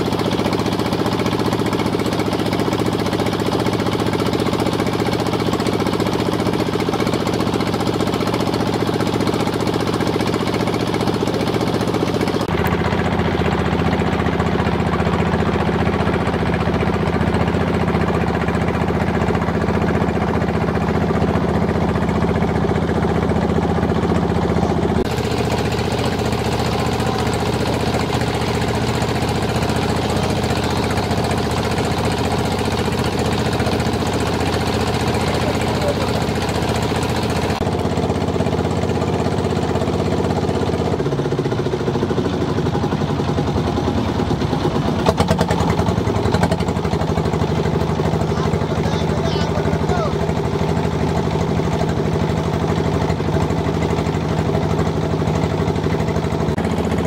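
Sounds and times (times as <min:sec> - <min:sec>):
boat engine running: 0:00.0 - 0:57.0.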